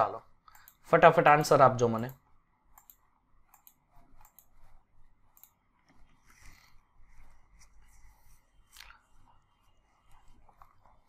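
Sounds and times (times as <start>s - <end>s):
person speaking: 0.0s - 2.3s.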